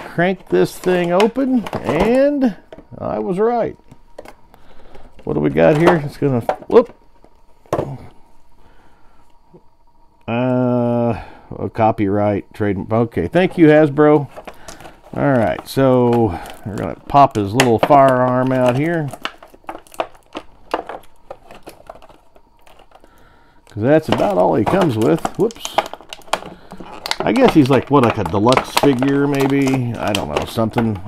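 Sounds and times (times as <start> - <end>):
packaging rustling: 0.0 - 2.9, 13.4 - 31.0.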